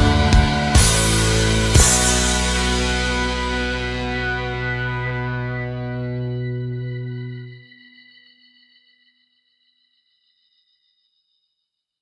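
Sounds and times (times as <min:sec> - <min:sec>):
distorted electric guitar chord: 0:00.0 - 0:07.6.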